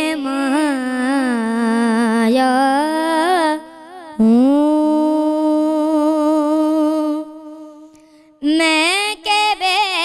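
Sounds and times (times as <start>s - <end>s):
boy singing unaccompanied: 0.0s - 10.0s.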